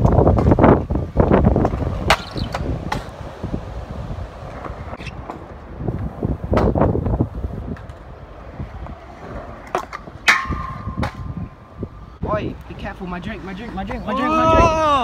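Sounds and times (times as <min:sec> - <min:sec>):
scooter rolling on concrete: 0:00.0 - 0:12.0, 0:12.7 - 0:14.8
wind buffeting microphone: 0:00.0 - 0:15.0.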